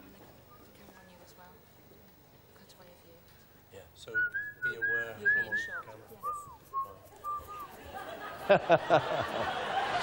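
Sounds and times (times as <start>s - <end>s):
person whistling a tune: 4.2s - 7.7s.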